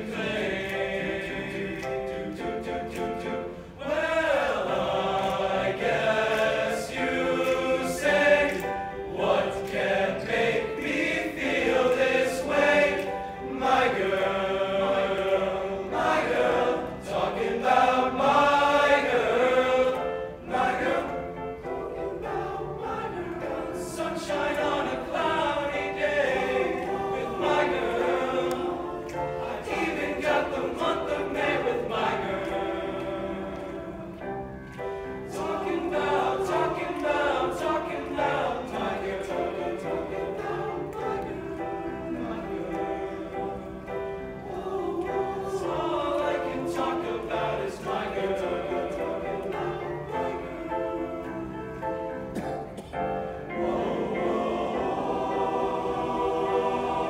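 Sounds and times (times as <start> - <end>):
male choir singing in harmony: 0.0 - 57.0.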